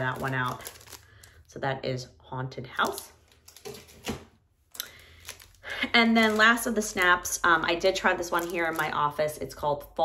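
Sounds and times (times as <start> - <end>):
plastic packaging clicks: 0.0 - 1.4
plastic packaging rustling: 0.0 - 1.5, 2.8 - 9.4.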